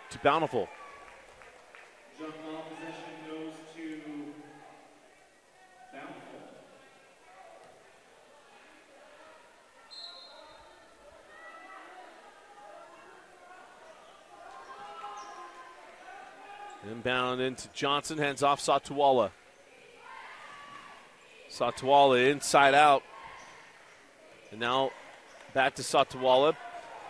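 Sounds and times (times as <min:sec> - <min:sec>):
people calling out and chattering: 0:00.0 - 0:27.0.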